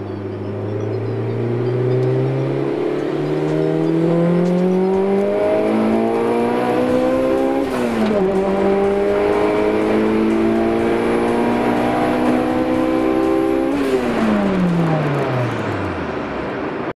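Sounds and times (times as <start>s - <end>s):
car engine revving under throttle: 0.0s - 16.3s.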